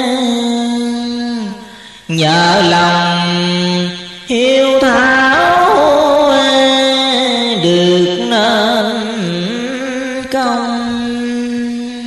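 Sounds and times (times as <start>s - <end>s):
person chanting in held notes: 0.0s - 12.0s.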